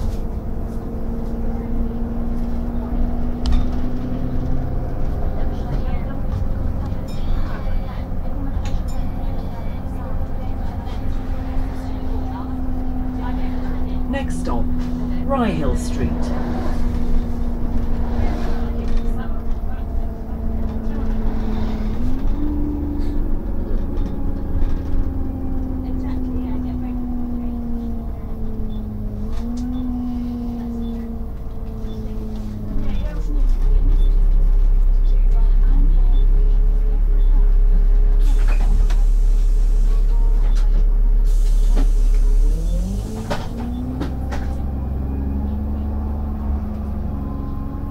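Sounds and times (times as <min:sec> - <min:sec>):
bus drivetrain whine: 0:00.0 - 0:47.9
low engine rumble: 0:00.0 - 0:47.9.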